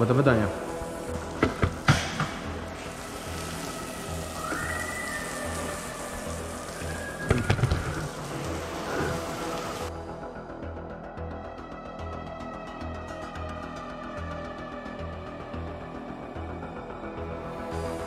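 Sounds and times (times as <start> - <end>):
hose spray hissing on car: 0.2 - 9.9.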